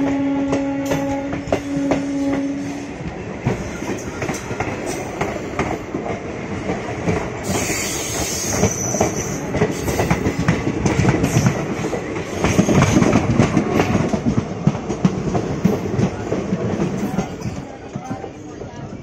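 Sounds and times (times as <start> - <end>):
train wheels clattering: 0.0 - 19.0.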